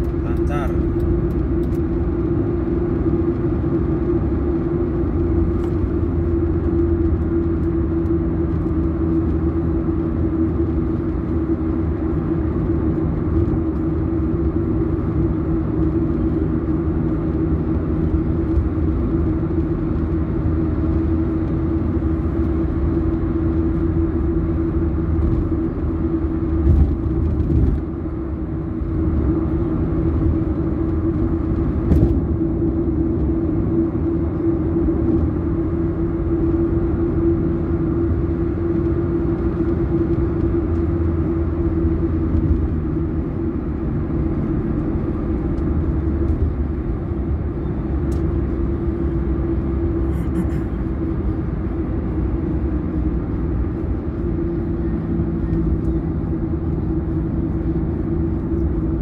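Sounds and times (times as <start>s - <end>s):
car road and engine noise: 0.0s - 59.0s
constant low hum: 0.0s - 59.0s.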